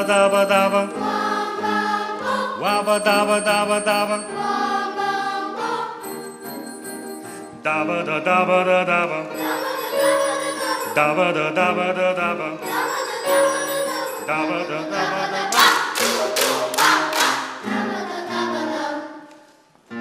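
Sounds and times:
boys' choir singing: 0.0s - 6.1s, 7.8s - 19.3s
piano accompaniment: 0.0s - 19.2s.

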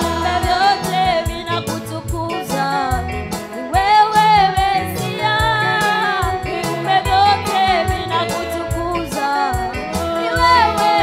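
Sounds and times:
bass guitar: 0.0s - 11.0s
woman singing into a microphone: 0.0s - 11.0s.

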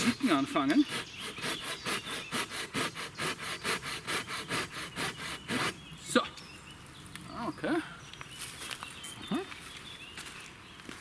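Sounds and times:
pruning saw cutting wood: 0.0s - 5.8s.

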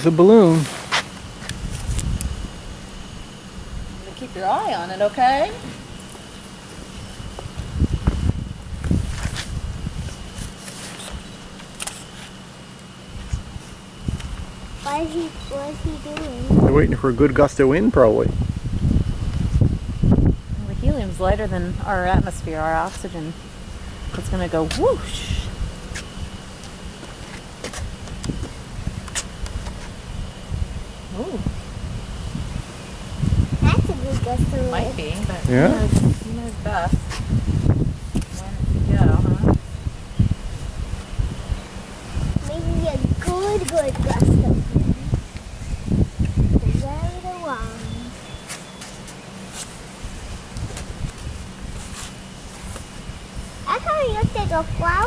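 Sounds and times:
faint steady high whine: 0.0s - 55.0s
faint steady hum: 0.0s - 55.0s
wind rumbling on microphone: 0.2s - 11.8s, 13.0s - 48.5s, 49.6s - 55.0s
person speaking: 33.7s - 36.8s.

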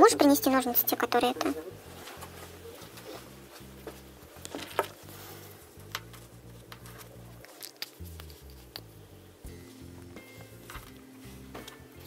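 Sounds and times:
fabric rustling: 1.6s - 8.7s.

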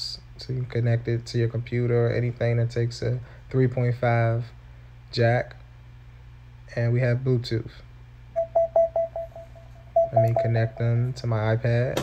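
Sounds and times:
rapid mid-pitched beeps: 8.4s - 11.0s.

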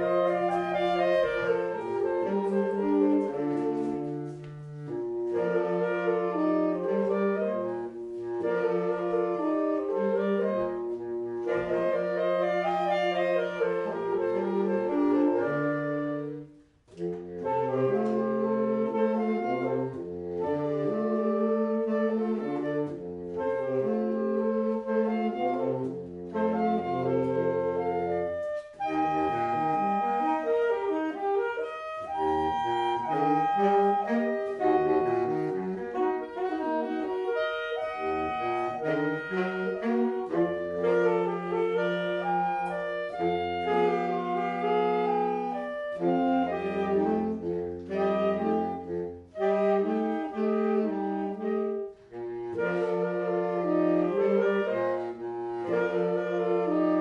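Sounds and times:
saxophone ensemble playing: 0.0s - 57.0s.

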